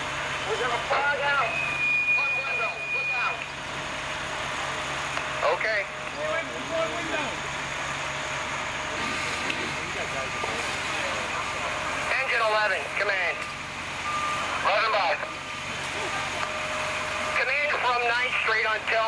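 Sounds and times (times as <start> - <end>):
fire engine running: 0.0 - 19.0.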